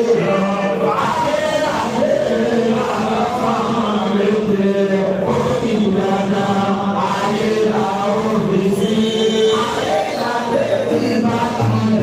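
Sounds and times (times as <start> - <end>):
voices chanting a prayer: 0.0 - 12.0.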